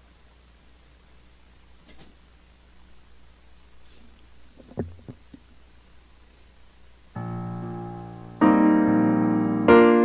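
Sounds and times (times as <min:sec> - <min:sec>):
low thumps on microphone: 0:04.5 - 0:05.4.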